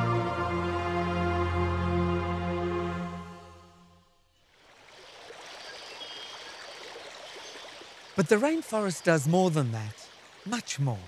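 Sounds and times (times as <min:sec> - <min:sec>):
creek running over rocks: 0:04.4 - 0:11.0.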